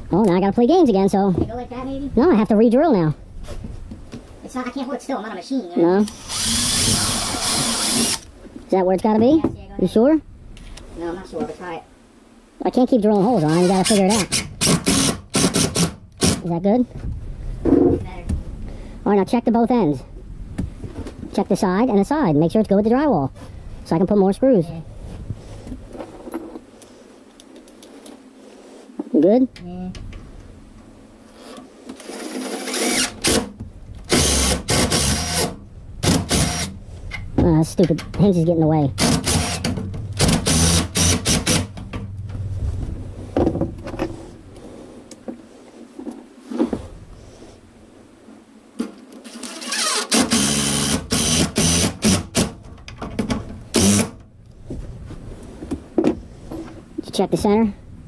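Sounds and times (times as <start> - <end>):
cordless driver driving screws: 6.1 - 8.3, 13.5 - 16.4, 32.0 - 33.5, 34.1 - 36.7, 39.0 - 41.7, 49.2 - 52.5, 53.7 - 54.2.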